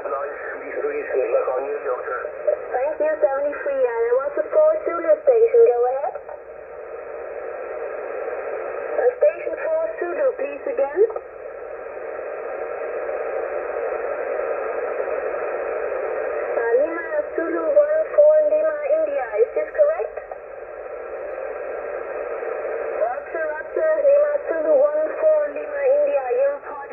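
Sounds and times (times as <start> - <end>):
radio band hiss: 0.0 - 26.9.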